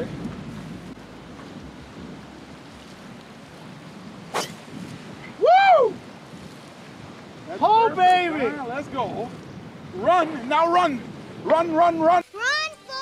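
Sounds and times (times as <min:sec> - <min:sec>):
wind hiss: 0:00.0 - 0:13.0
golf club striking ball: 0:04.3 - 0:04.7.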